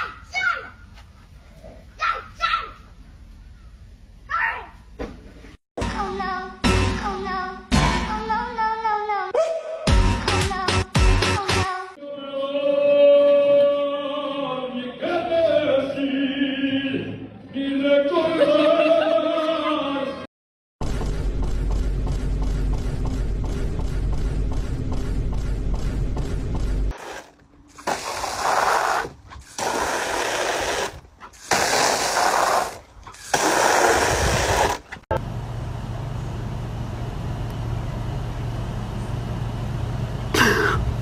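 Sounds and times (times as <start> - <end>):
low rumble with fast ticking: 20.8 - 26.9
steady low hum: 20.8 - 26.9, 35.1 - 41.0
garden hose spraying water: 26.9 - 35.0.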